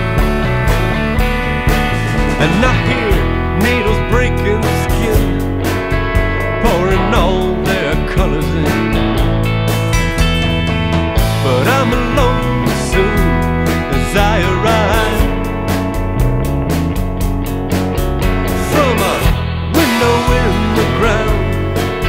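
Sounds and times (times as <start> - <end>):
drums and bass: 0.0 - 22.0
rock guitar with bending notes: 0.0 - 22.0.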